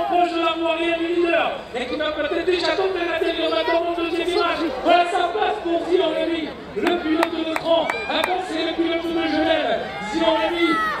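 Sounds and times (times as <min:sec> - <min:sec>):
man commentating: 0:00.0 - 0:11.0.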